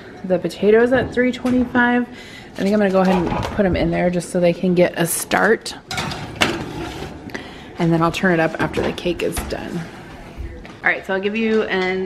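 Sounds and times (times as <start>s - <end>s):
metal scraping and rattling: 5.9s - 7.3s.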